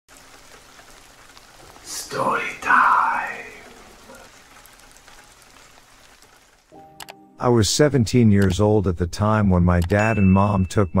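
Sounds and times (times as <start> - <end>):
rain patter: 0.1 - 11.0.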